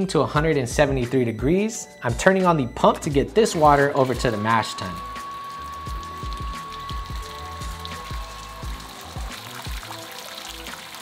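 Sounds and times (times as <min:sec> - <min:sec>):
background music with low beat: 0:00.0 - 0:11.0
water splashing into steel tank: 0:03.5 - 0:11.0.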